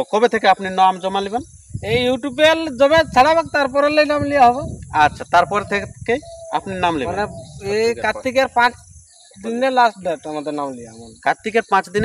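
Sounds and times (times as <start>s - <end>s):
man speaking: 0.0s - 8.8s, 9.4s - 12.0s
high-pitched buzz: 1.8s - 9.6s.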